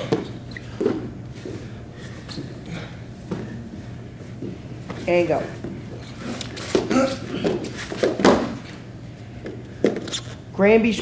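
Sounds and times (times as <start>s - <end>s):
bodies hitting foam mat: 3.2s - 8.8s.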